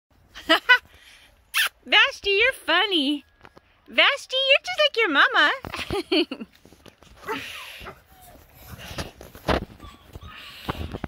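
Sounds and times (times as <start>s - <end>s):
puppies yipping: 9.5s - 11.0s.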